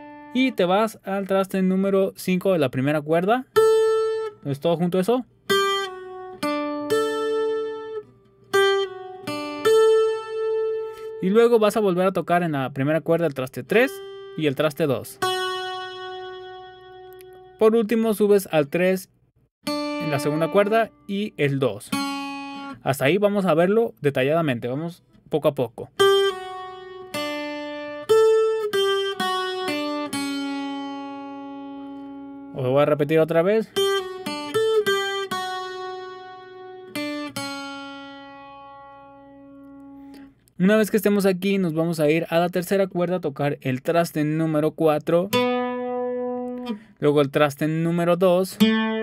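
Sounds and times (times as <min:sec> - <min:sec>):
acoustic guitar lead line: 0:00.0 - 0:23.6, 0:24.3 - 0:49.0.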